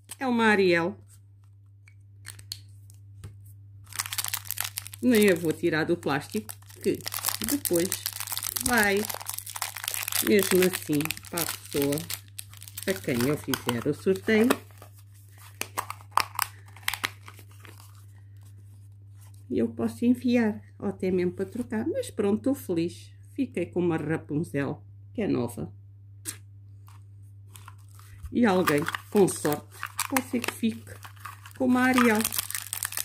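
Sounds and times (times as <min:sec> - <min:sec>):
plastic wrapper crinkling: 0:01.4 - 0:03.1, 0:03.8 - 0:18.2, 0:27.5 - 0:33.0.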